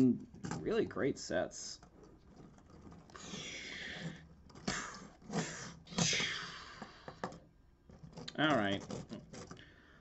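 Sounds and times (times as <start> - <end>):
person breathing out hissing: 3.1 - 7.1.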